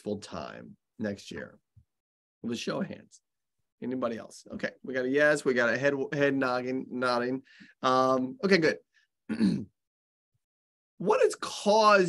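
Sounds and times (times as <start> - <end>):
man clearing his throat: 9.3 - 9.8.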